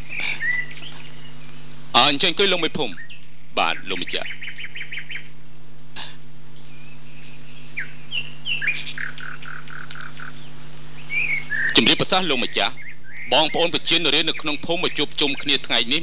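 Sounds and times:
birds chirping: 0.0 - 16.0
steady low hum: 0.0 - 16.0.

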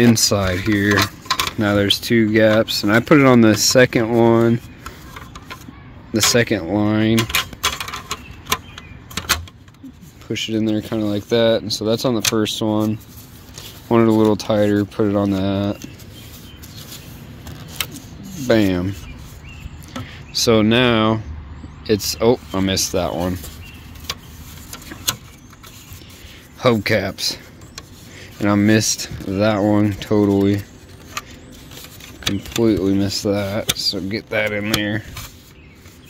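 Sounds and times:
plastic and metal clicks: 0.4 - 1.8, 7.1 - 9.9, 29.9 - 35.4.

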